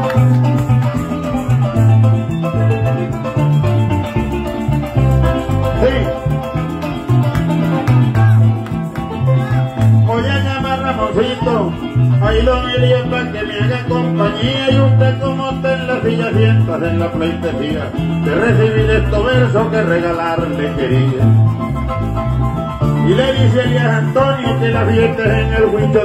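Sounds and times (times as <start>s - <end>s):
electric bass line: 0.0s - 26.0s.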